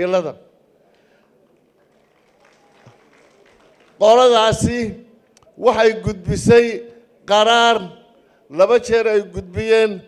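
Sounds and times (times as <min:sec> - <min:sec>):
man speaking: 0:04.0 - 0:10.0.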